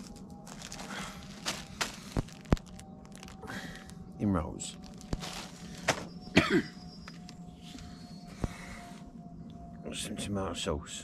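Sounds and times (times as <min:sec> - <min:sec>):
plastic bag rustling: 0:00.0 - 0:03.9, 0:04.6 - 0:06.2.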